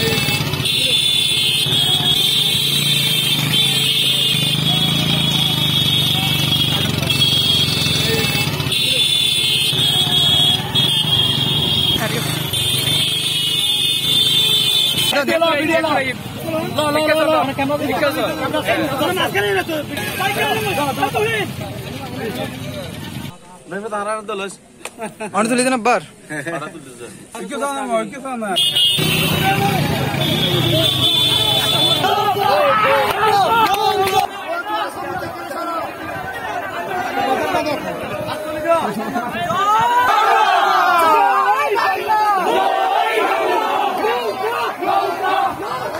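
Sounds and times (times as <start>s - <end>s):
crowd of men talking: 0.0s - 12.8s, 15.1s - 45.9s
motorcycles running at low speed: 0.0s - 15.2s, 28.9s - 34.3s.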